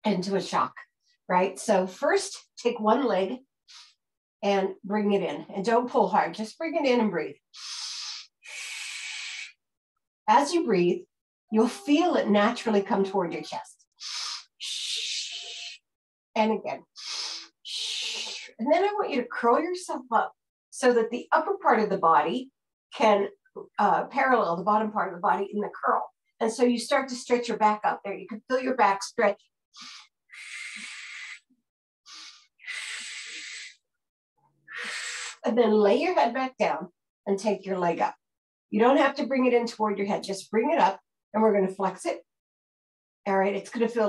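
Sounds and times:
woman breathing slowly: 29.8s - 31.4s.

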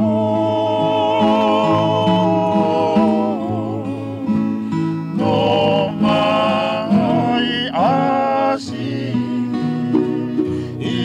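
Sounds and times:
acoustic guitar: 0.0s - 11.0s
voices singing with vibrato: 0.0s - 11.0s.

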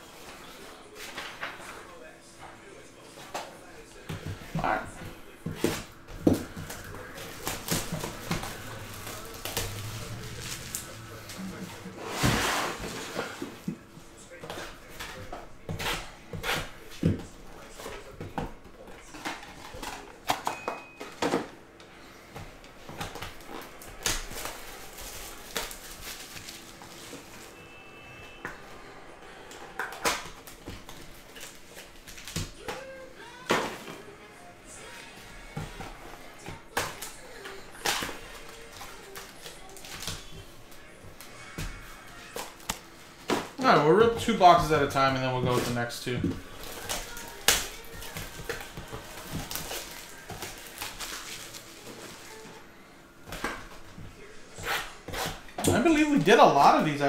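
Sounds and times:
faint background music: 0.0s - 57.0s
cardboard box and foil packs crinkling: 2.7s - 27.7s, 29.9s - 34.2s, 34.8s - 57.0s.

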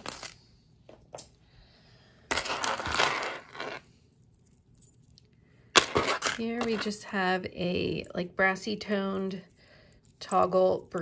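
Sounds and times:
metal jewelry clinking: 2.3s - 7.0s, 8.8s - 11.0s.

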